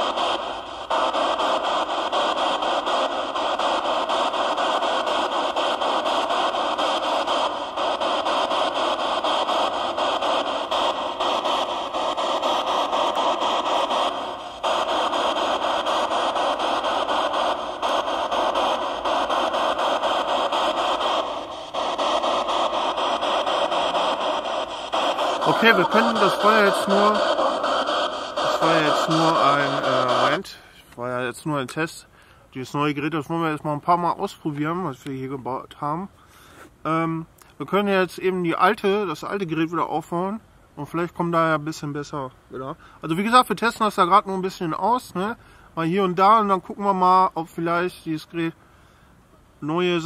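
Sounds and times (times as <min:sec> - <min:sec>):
radio static hiss: 0:00.0 - 0:30.6.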